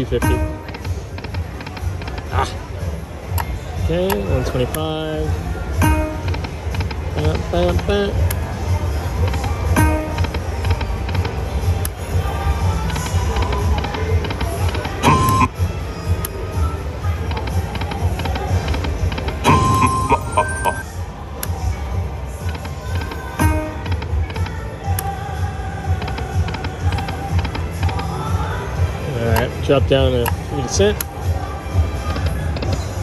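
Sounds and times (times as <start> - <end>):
slot machine music and effects: 0.0 - 1.2, 5.8 - 7.8, 9.6 - 11.0, 15.0 - 15.6, 18.6 - 21.0.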